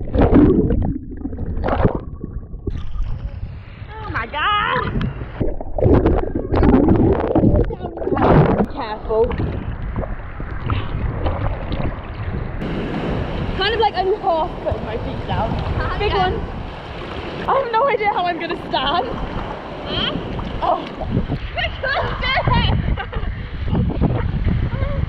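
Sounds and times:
sea water sloshing and splashing: 0.0 - 3.8, 4.8 - 22.4
wind buffeting microphone: 0.0 - 25.0.

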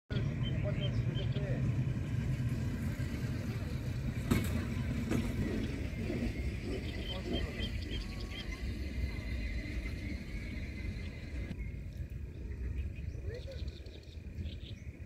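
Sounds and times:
steady low rumble: 0.1 - 15.0.

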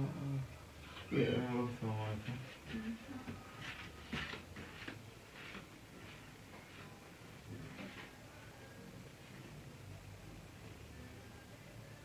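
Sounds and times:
faint low hum: 0.0 - 12.0
soft footsteps on tiled floor: 2.1 - 8.5.

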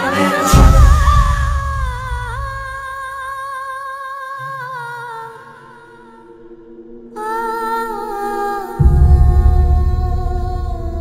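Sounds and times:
low sustained tones: 4.4 - 11.0.

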